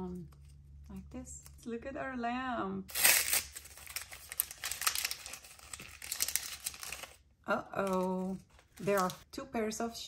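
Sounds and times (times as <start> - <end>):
plastic packet crinkling and tearing: 2.9 - 7.2, 7.8 - 9.2.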